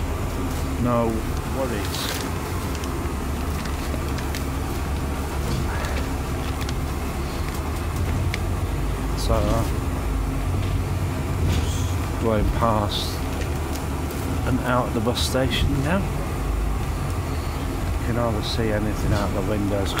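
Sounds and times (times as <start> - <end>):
bus engine and road rumble: 0.0 - 20.0.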